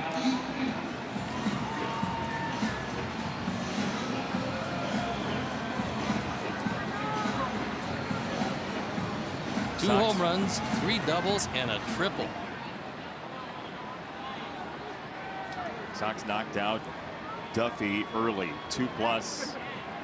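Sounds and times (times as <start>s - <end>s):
music over stadium speakers: 0.0s - 12.4s
crowd hubbub: 0.0s - 20.0s.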